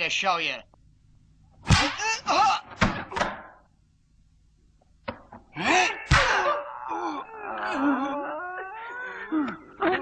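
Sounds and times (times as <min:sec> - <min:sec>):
man crying out: 0:05.6 - 0:10.0
man moaning in pain: 0:05.6 - 0:10.0.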